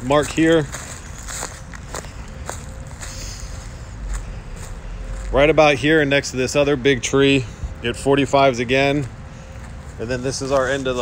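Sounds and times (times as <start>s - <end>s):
footsteps on dry leaves: 0.0s - 6.6s, 8.9s - 11.0s
faint steady hum: 0.0s - 11.0s.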